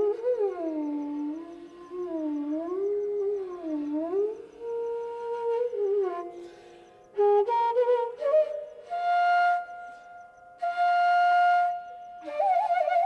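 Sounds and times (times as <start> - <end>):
bamboo flute melody: 0.0 - 13.0.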